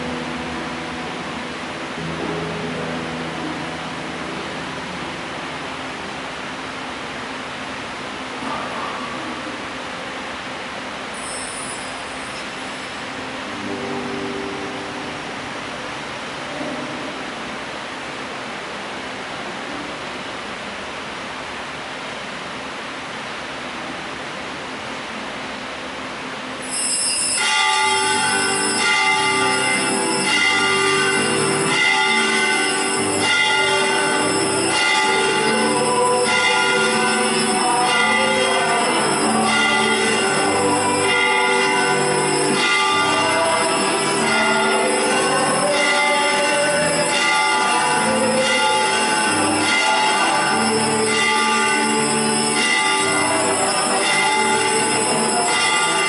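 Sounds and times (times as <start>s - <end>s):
loud held chord: 0.0s - 6.8s, 27.6s - 56.0s
steady hiss: 0.0s - 49.5s.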